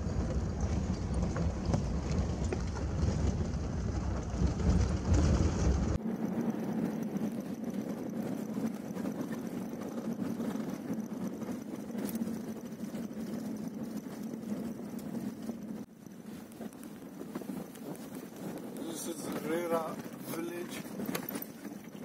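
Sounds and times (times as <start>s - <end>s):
vehicle driving on dirt road: 0.0s - 22.0s.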